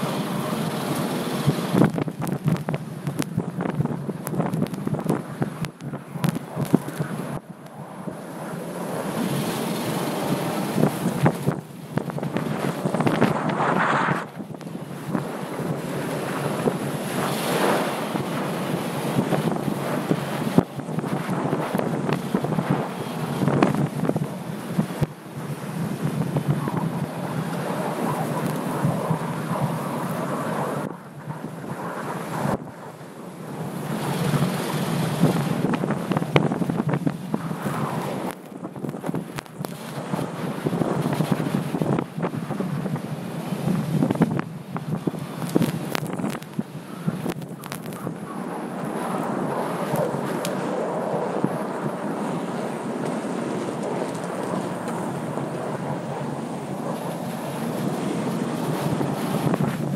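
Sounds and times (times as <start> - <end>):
wind rushing over microphone: 0.0 - 59.9
tyre and snow-spray noise: 12.2 - 14.5.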